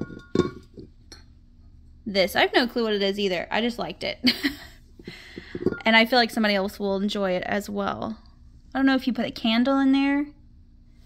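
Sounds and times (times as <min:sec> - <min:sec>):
ceramic candle holder clinking: 0:00.0 - 0:01.3, 0:05.4 - 0:05.9.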